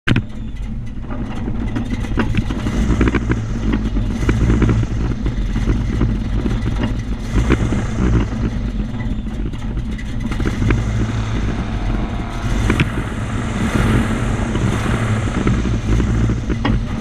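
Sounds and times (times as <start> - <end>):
airboat engine droning: 9.8 - 17.0.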